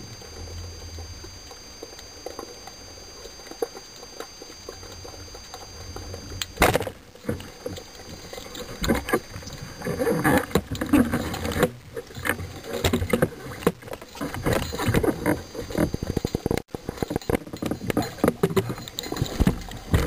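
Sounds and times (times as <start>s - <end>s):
water rustling: 0.0s - 20.0s.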